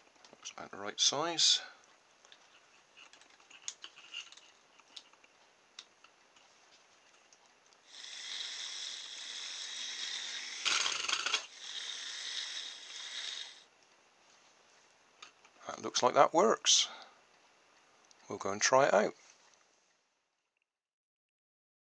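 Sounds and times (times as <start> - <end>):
rattle: 8.0 - 13.6.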